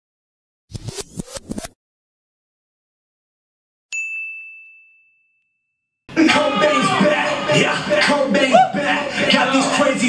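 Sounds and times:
bright bell-like ding: 0:03.9 - 0:05.7.

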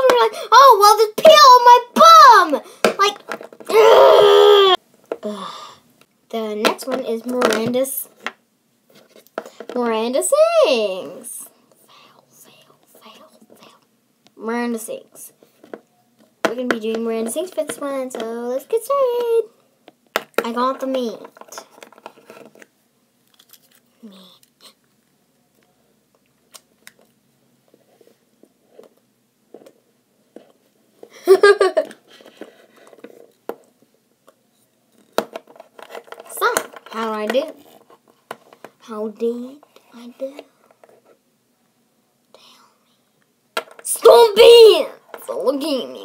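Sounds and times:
girl crying out and wailing: 0:03.7 - 0:04.8
handling rustles and clicks: 0:21.2 - 0:25.7.

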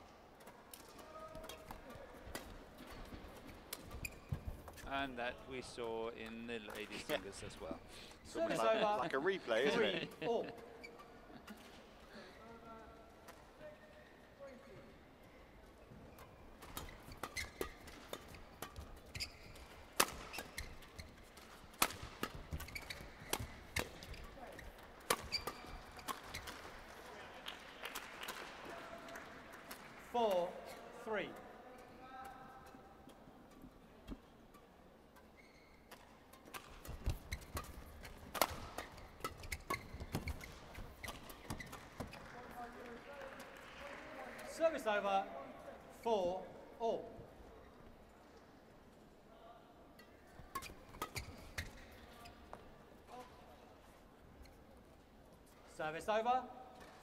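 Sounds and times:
rackets hitting shuttlecock: 0:16.2 - 0:27.1, 0:32.4 - 0:42.2.

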